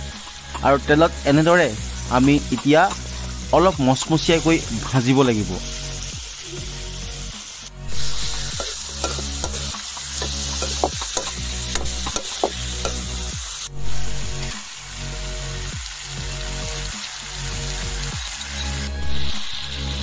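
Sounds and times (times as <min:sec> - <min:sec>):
meat sizzling in hot oil: 0:00.0 - 0:20.0.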